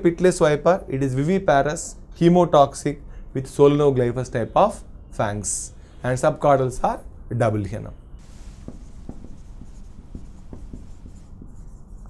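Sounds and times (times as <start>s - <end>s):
marker writing on whiteboard: 8.2s - 12.0s.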